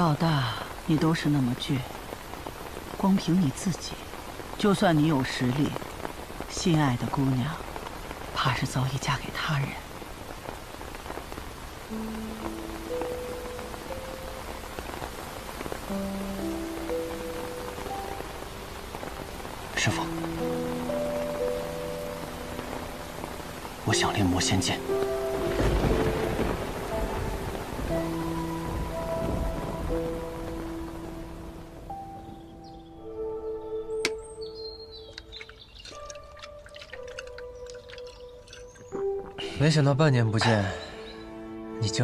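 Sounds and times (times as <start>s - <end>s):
soft music with low notes: 0.0s - 42.0s
steady rain falling: 0.0s - 42.0s
low rumble of thunder: 25.2s - 30.9s.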